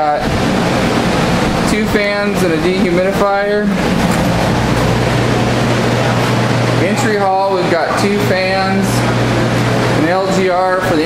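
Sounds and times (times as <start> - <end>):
air movers rushing air: 0.0 - 11.0
dehumidifier low hum: 0.0 - 11.0.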